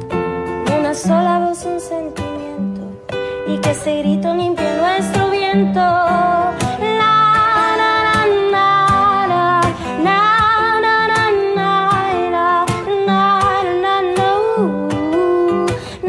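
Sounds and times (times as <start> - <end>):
strummed guitar: 0.0 - 16.0.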